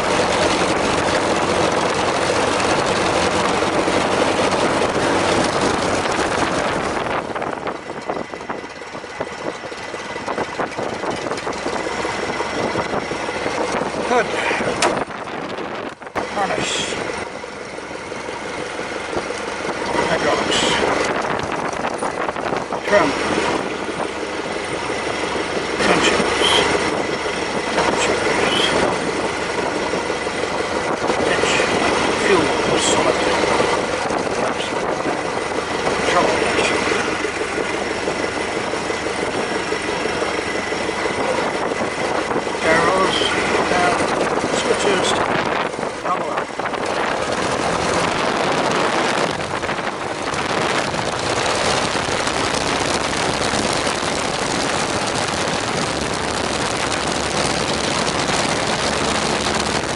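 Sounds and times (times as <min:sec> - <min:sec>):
biplane engine running: 0:00.0 - 0:59.9.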